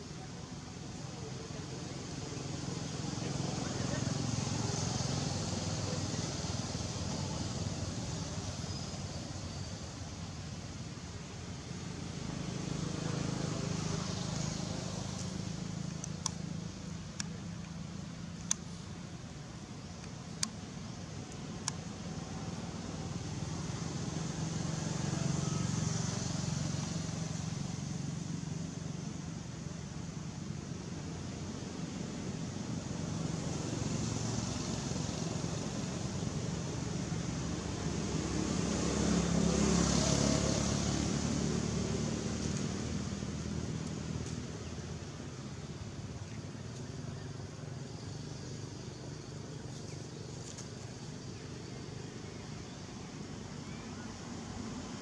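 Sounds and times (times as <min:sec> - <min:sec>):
passing vehicle engines hum: 0:00.0 - 0:55.0.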